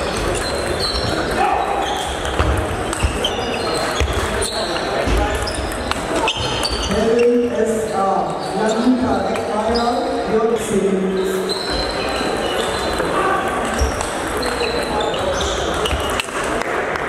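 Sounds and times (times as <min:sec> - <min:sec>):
table tennis balls clicking: 0:00.0 - 0:06.7, 0:11.9 - 0:17.0
hubbub of voices: 0:00.0 - 0:17.0.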